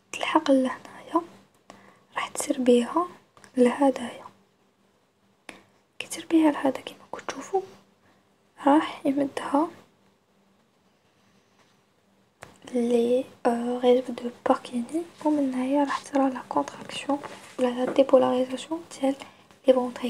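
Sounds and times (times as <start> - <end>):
person talking: 2.2 - 4.3, 8.6 - 9.8, 12.4 - 20.0.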